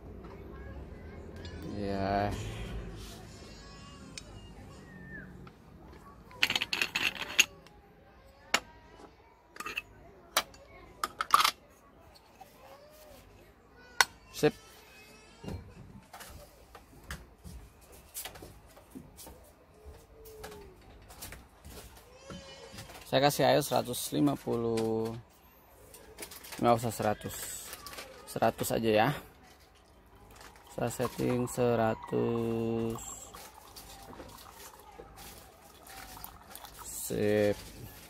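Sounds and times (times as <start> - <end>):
metal parts clattering: 6.4 - 7.5.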